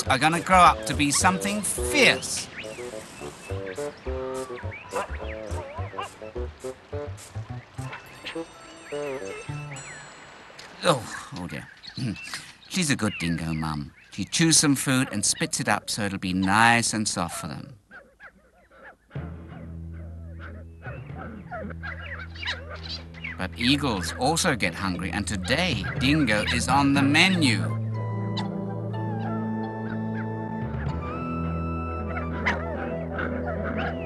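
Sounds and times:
music with held low notes: 0:00.0 - 0:10.4, 0:19.2 - 0:34.0
dingo pups whimpering and squealing: 0:04.7 - 0:06.3, 0:20.3 - 0:23.2, 0:28.2 - 0:30.9, 0:32.0 - 0:34.0.

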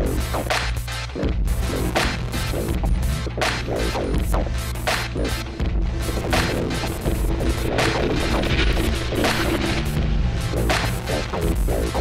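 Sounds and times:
droning electronic bass: 0:00.0 - 0:12.0
sharp percussive hits: 0:06.1 - 0:12.0.

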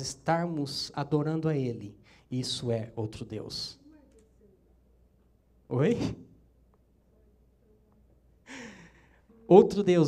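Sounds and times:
man sighing: 0:08.5 - 0:09.2.

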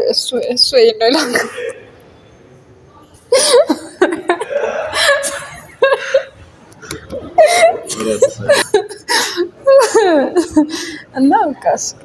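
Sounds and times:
woman speaking: 0:00.0 - 0:01.6, 0:09.7 - 0:12.0
woman chuckling: 0:03.3 - 0:10.7.

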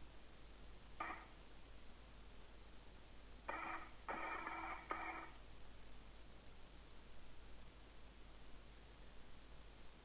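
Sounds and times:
low steady hum: 0:00.0 - 0:10.0
radio static bursts: 0:01.0 - 0:01.4, 0:03.4 - 0:05.4.

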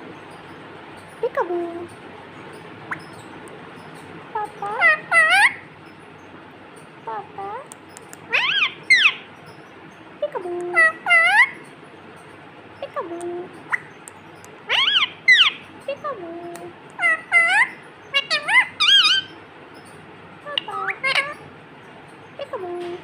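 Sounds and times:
parakeet calling: 0:00.0 - 0:23.0.

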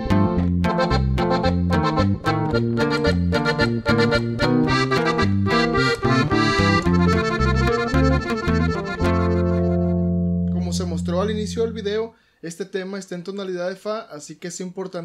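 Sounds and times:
accordion melody: 0:00.0 - 0:12.0.

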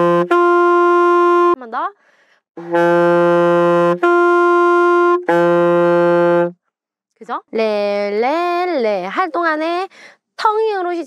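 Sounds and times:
alto saxophone playing octaves: 0:00.0 - 0:01.6, 0:02.6 - 0:06.6.

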